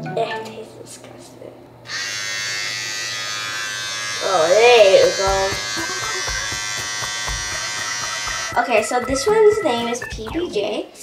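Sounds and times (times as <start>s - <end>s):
electric shaver buzzing: 1.8s - 9.8s.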